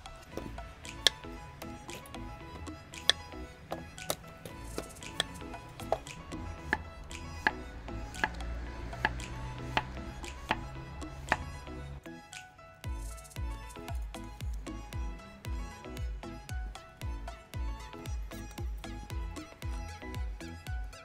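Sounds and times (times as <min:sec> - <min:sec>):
background music: 0:00.0 - 0:21.0
knife chopping on wooden board: 0:09.0 - 0:10.7, 0:11.3 - 0:11.5.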